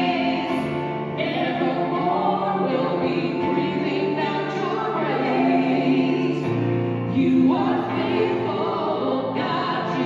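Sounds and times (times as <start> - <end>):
voices singing a hymn: 0.0 - 10.0.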